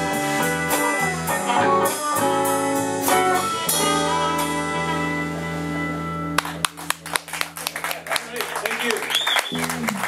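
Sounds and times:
electric guitar and bass chord: 0.0s - 7.9s
audience clapping: 6.4s - 10.0s.

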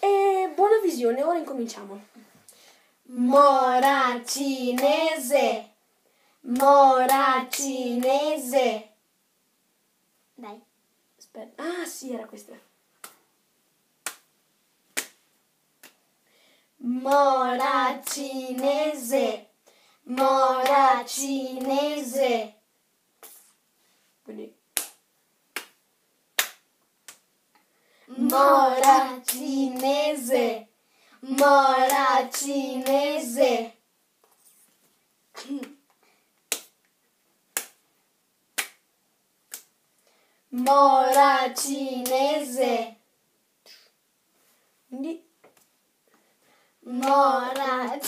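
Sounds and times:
children hand-clapping: 3.3s - 5.2s, 6.5s - 8.4s, 17.0s - 19.1s, 20.1s - 22.0s, 26.4s - 27.2s, 28.2s - 30.5s, 31.2s - 33.6s, 36.5s - 36.8s, 38.6s - 38.8s, 40.6s - 42.5s, 46.9s - 48.0s
sharp hand slaps: 13.0s - 13.2s, 14.0s - 14.3s, 14.9s - 15.2s, 15.8s - 16.0s, 23.2s - 23.5s, 24.8s - 25.8s, 26.4s - 27.2s, 36.5s - 36.8s, 37.5s - 37.8s, 38.6s - 38.8s, 39.5s - 39.7s.

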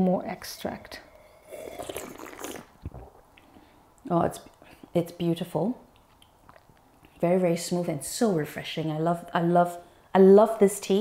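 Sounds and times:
person slurping tea: 0.8s - 3.1s.

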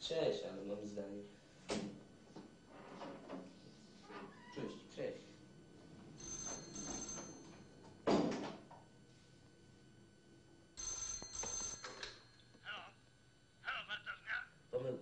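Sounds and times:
telephone bell ringing: 5.2s - 9.2s, 10.7s - 13.3s.

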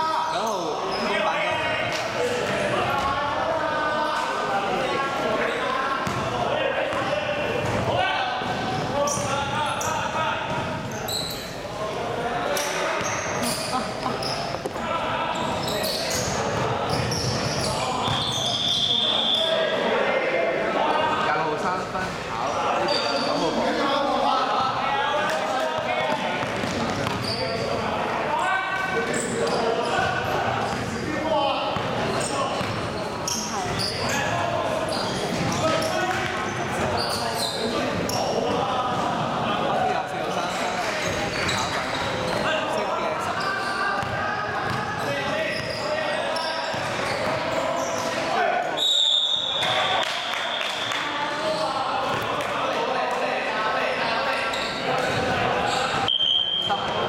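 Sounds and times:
sneakers squeaking: 0.2s - 3.2s, 5.4s - 11.8s, 12.6s - 19.6s, 22.7s - 23.7s, 25.8s - 39.2s, 40.2s - 52.3s, 54.0s - 57.0s
basketball bouncing on court: 6.0s - 6.3s, 6.9s - 9.6s, 10.4s - 10.9s, 26.3s - 27.4s, 32.6s - 32.9s, 44.0s - 44.8s
referee whistle: 17.7s - 19.6s, 48.8s - 50.9s, 56.0s - 57.0s.

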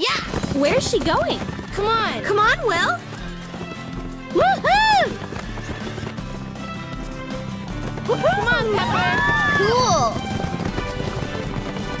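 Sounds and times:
background music: 0.0s - 12.0s
galloping horse hoofbeats: 0.0s - 12.0s.

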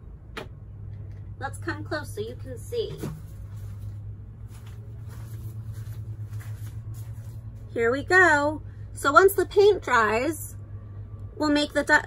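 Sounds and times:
steady low hum: 0.0s - 12.0s
handling rustles and knocks: 2.8s - 7.7s.

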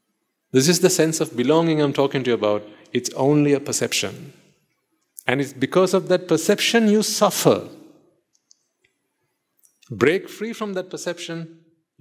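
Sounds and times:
man speaking: 0.6s - 4.4s, 5.2s - 7.8s, 9.9s - 11.5s.

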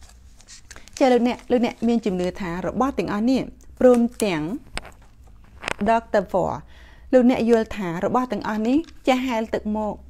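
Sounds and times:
paper packaging rustling: 0.0s - 2.8s, 3.8s - 5.9s
woman speaking: 1.0s - 4.7s, 5.7s - 10.0s.

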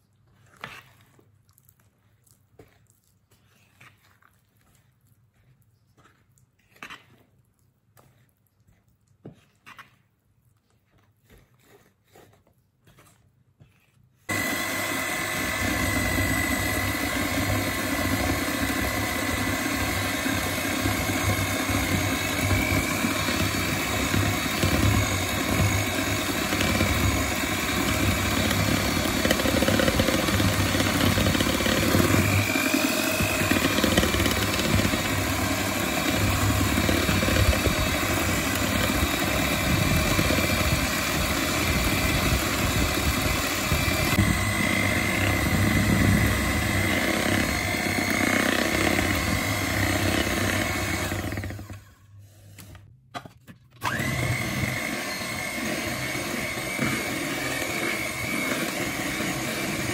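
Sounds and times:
electric hand mixer whirring: 14.3s - 52.1s, 53.8s - 59.9s.

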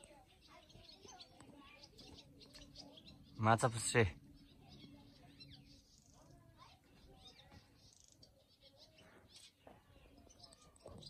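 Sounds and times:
low outdoor hum: 0.0s - 10.5s
faint bird chirps: 0.0s - 11.0s.

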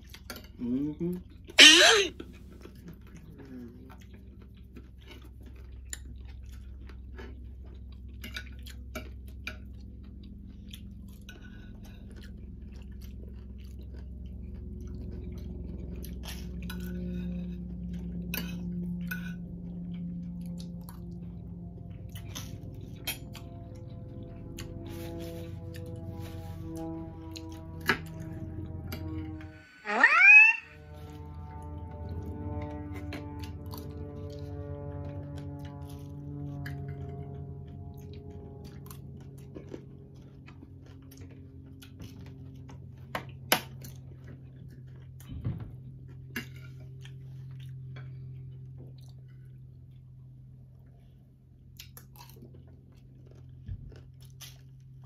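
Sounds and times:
close chewing: 2.4s - 18.3s, 35.4s - 45.3s, 46.0s - 51.0s, 51.6s - 55.0s.

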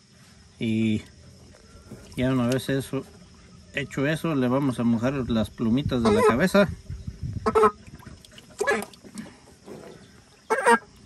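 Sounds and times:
fowl honking calls: 6.0s - 6.5s, 7.4s - 7.8s, 8.6s - 9.0s, 10.4s - 11.0s.

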